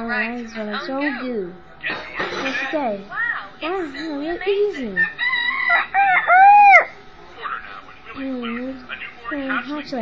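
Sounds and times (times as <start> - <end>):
rooster crowing: 5.0 - 7.0.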